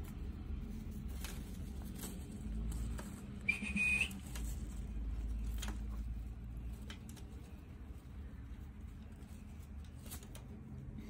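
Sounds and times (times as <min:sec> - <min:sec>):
high clean whistle: 0:03.4 - 0:04.2.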